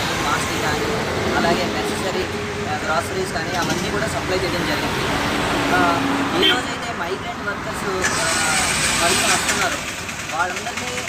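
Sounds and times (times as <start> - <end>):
man talking: 0.0 - 5.1, 5.7 - 11.0
passing vehicle rush: 0.0 - 11.0
road traffic: 0.0 - 11.0.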